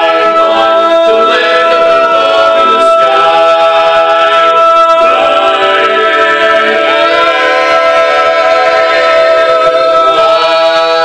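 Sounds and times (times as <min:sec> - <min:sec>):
men singing in close harmony: 0:00.0 - 0:11.0.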